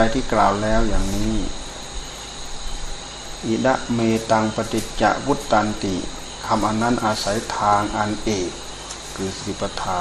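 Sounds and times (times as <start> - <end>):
man speaking: 0.0 - 1.6, 3.4 - 8.6, 9.2 - 10.0
recording hiss: 0.0 - 10.0.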